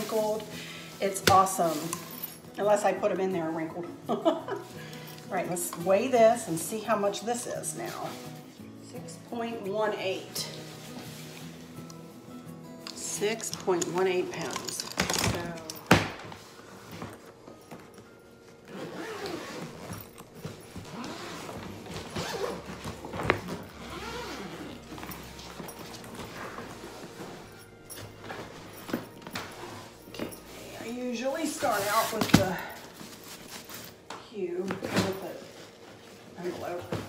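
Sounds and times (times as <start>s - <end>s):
fabric rustling: 10.1s - 11.8s, 16.2s - 37.0s.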